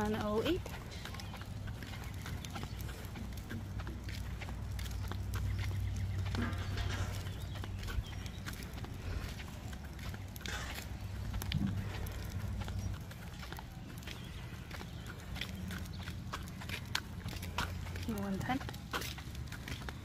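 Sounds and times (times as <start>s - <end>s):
footsteps: 0.0s - 20.0s
wagon wheels rolling on asphalt: 0.0s - 20.0s.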